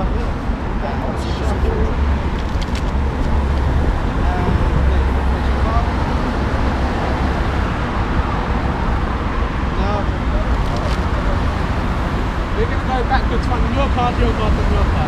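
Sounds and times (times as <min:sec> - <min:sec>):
faint voices: 0:00.0 - 0:06.1, 0:08.6 - 0:15.0
road traffic rumble: 0:00.0 - 0:15.0.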